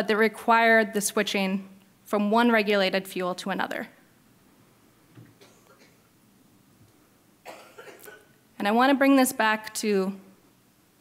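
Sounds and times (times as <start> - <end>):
person coughing: 5.4 - 6.0, 7.4 - 8.4.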